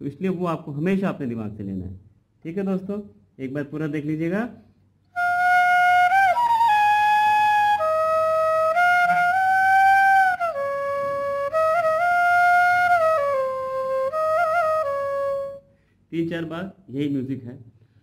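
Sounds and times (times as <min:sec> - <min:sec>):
bamboo flute melody: 0:05.2 - 0:15.7.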